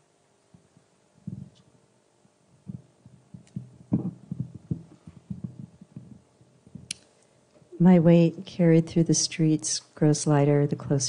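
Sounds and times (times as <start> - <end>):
microphone handling thumps: 1.2 - 1.6, 2.5 - 7.0.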